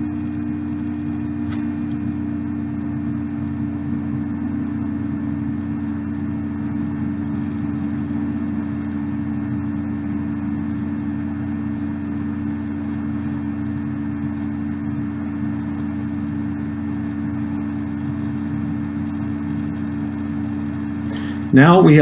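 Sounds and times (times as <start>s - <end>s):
low hum: 0.0s - 22.0s
noisy drone: 0.0s - 22.0s.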